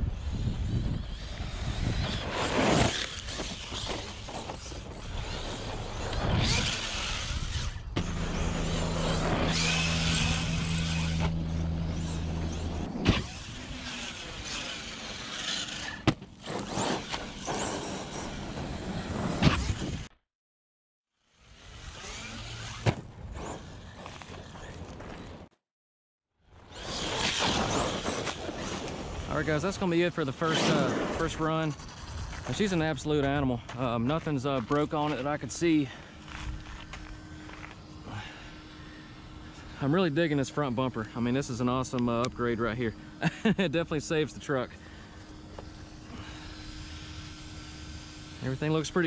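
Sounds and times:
electric motor whine: 0:00.0 - 0:20.1, 0:21.3 - 0:25.3, 0:34.2 - 0:49.0
tyres on dirt: 0:00.2 - 0:20.0, 0:26.7 - 0:38.6.

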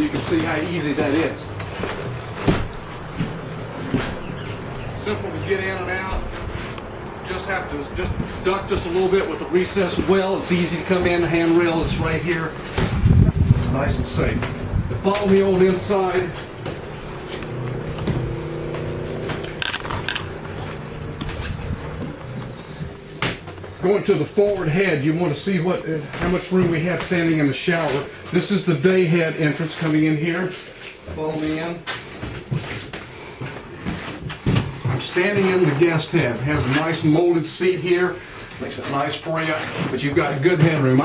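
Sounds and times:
footsteps on wooden steps: 0:00.0 - 0:07.2, 0:14.3 - 0:23.8
steady low hum: 0:00.0 - 0:38.8.

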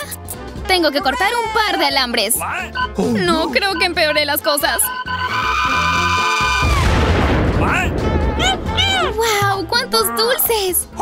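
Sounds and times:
background music: 0:00.0 - 0:11.0
cartoon explosion: 0:06.2 - 0:09.2.

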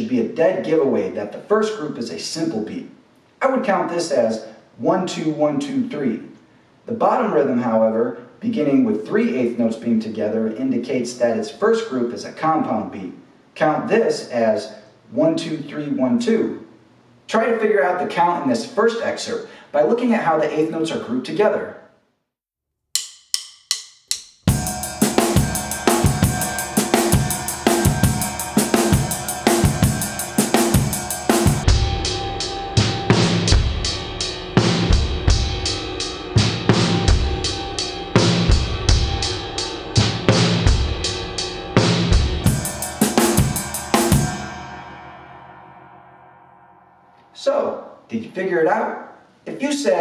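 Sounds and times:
drum kit groove: 0:23.0 - 0:46.0
cymbal ringing: 0:23.0 - 0:47.9.

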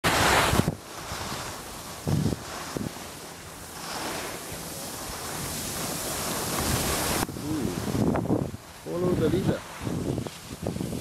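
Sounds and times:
skis sliding on snow: 0:00.0 - 0:11.0
wind buffeting microphone: 0:00.0 - 0:11.0.

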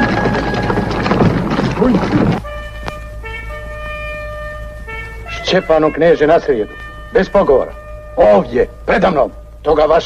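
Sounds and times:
sustained horn chord: 0:00.0 - 0:09.9.

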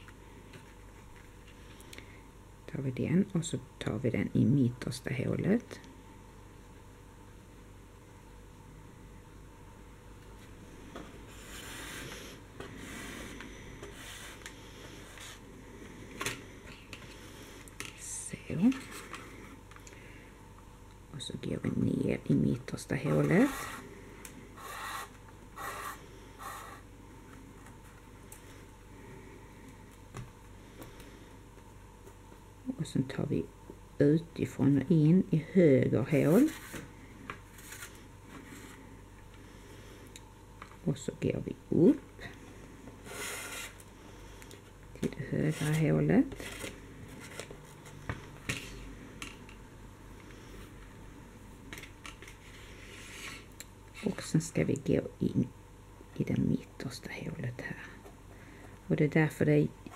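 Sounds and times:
elastic cord rasping on cardboard: 0:11.3 - 0:15.4.

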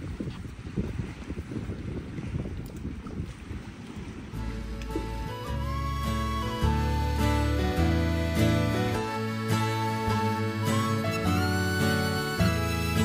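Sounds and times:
wind buffeting microphone: 0:00.0 - 0:13.0
music with held notes: 0:04.4 - 0:13.0.

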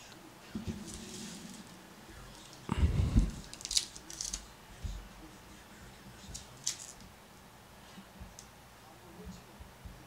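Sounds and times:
foil wrapper crinkling: 0:03.4 - 0:04.4.

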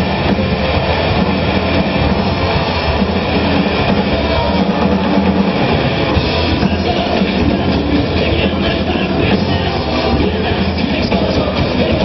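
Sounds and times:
hard rock band playing: 0:00.0 - 0:12.0.

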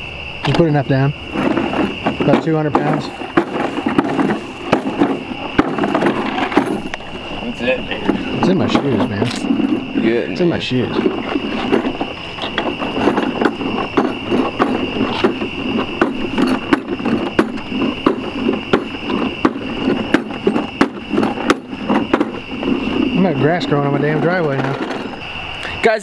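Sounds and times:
steady high-pitched whine: 0:00.0 - 0:26.0.

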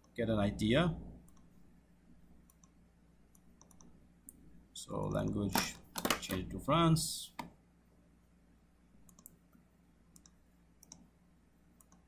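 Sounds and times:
computer mouse clicks: 0:02.4 - 0:04.4, 0:09.1 - 0:11.1, 0:11.8 - 0:12.0.

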